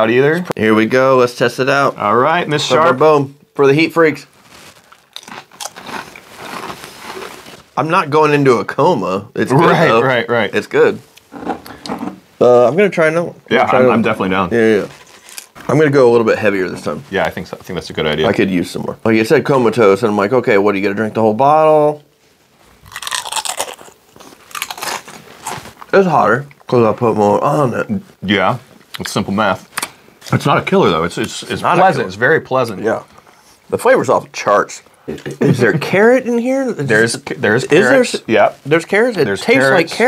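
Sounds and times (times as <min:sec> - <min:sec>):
tortilla chips crunching: 0:04.3 - 0:07.7, 0:22.9 - 0:25.9.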